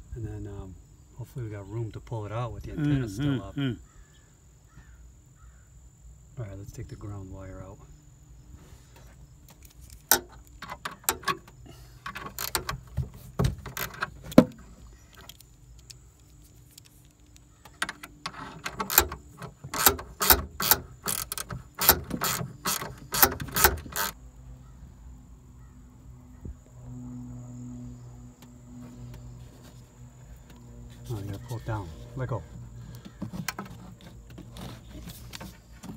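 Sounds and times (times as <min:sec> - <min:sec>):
ratchet wrench clicking: 0:12.1 - 0:12.8, 0:17.8 - 0:24.2.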